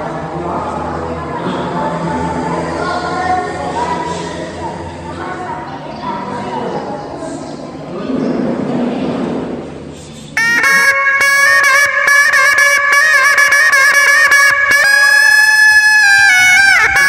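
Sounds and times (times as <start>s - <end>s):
shrill double-reed wind melody: 10.4s - 17.0s.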